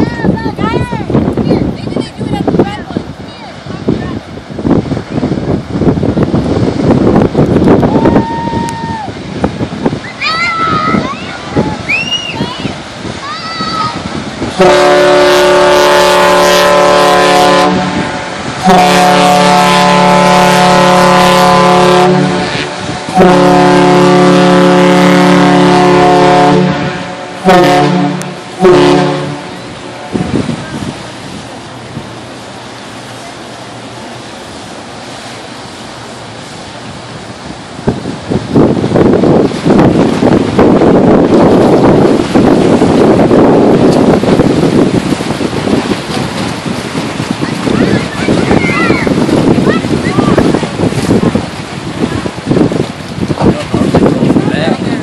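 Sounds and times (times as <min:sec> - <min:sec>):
water rushing from hull wash: 0:00.0 - 0:55.0
wind buffeting microphone: 0:00.0 - 0:55.0
steam whistle blast: 0:14.6 - 0:29.5.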